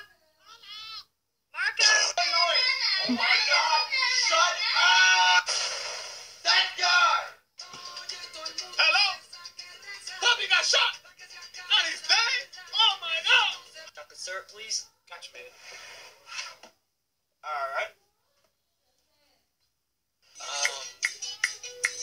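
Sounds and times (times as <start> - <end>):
person singing with sliding pitch: 2.2 - 5.5.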